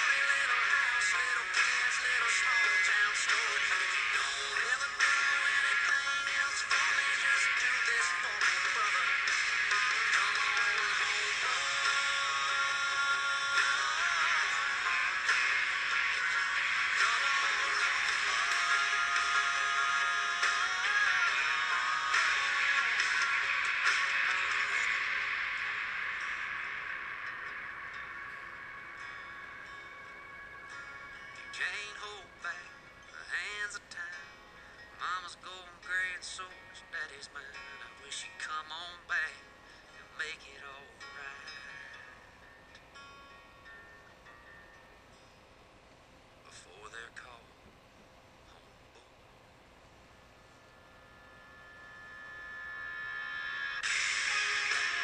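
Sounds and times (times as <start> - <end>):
country song playing: 0.0 - 43.4, 50.7 - 55.0.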